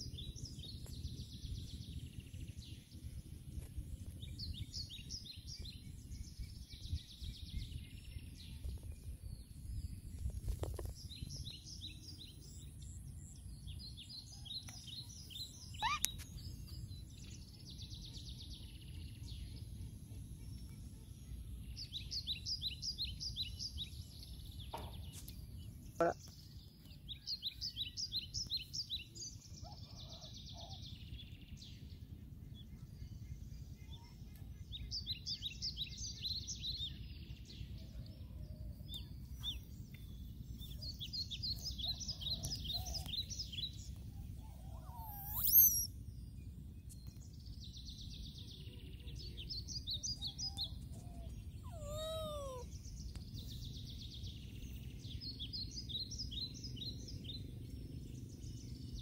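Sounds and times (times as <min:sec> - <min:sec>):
bird singing rapid notes: 0:15.1 - 0:18.4, 0:40.7 - 0:46.1
sharp sweeping bird chirp: 0:15.7 - 0:16.3, 0:44.4 - 0:46.0.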